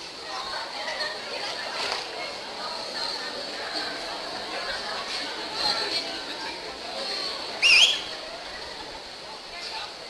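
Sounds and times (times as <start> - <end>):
loud whistle: 7.6 - 8.1.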